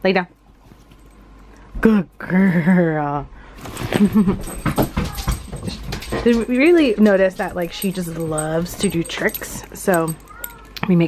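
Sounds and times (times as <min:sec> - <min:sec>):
paws thumping on floor: 0:04.1 - 0:10.6.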